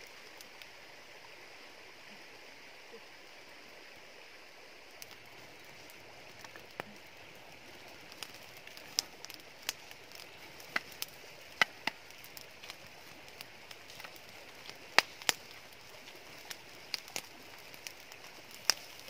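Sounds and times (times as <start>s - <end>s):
campfire crackling and popping: 0.0s - 1.2s, 4.8s - 19.0s
flowing water: 0.0s - 19.0s.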